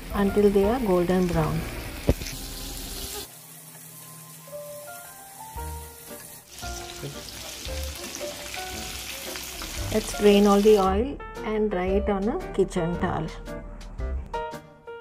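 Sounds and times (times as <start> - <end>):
food sizzling in hot oil: 0.0 - 10.9.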